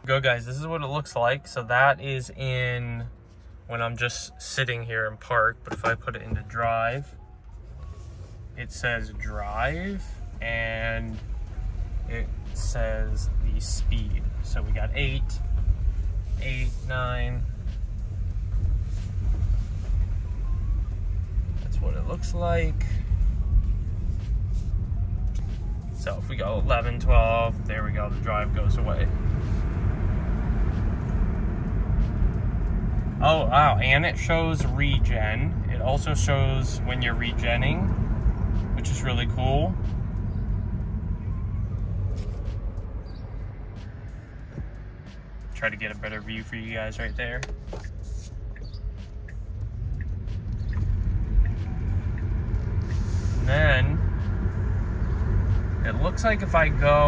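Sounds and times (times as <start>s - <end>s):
tyre and road noise in car cabin: 0.0s - 57.0s.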